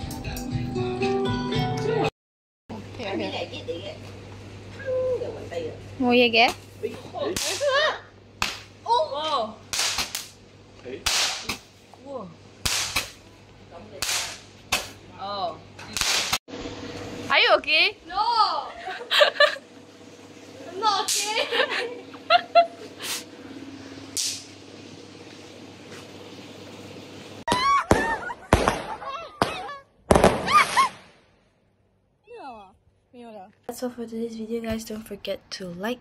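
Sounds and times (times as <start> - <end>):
young women shrieking: 27.5 - 28.4
fireworks bangs: 27.5 - 31.2.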